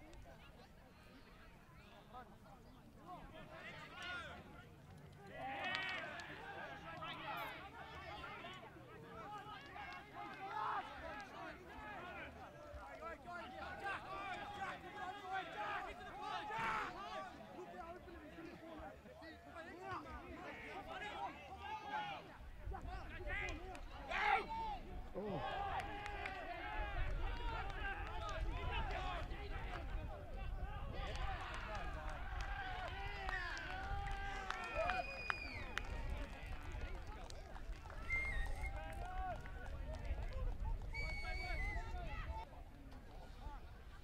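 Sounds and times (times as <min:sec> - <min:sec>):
crowd shouting and cheering: 0:03.2 - 0:44.0
referee's whistle: 0:38.0 - 0:38.8, 0:40.9 - 0:41.9.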